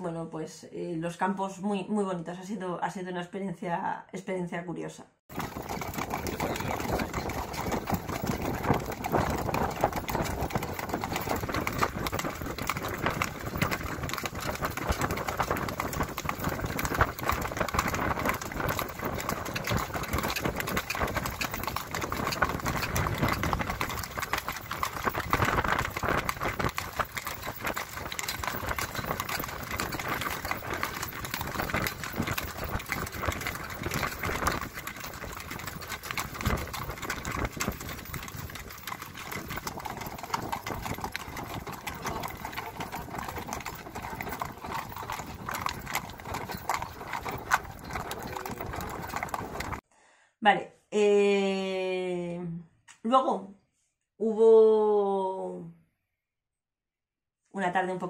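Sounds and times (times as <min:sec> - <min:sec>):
carriage rolling: 0:05.3 - 0:49.8
horse hooves clip-clopping: 0:05.3 - 0:49.8.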